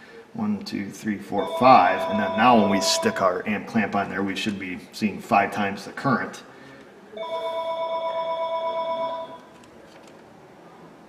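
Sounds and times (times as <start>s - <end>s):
telephone ringing: 1.4s - 3.3s, 7.2s - 9.5s.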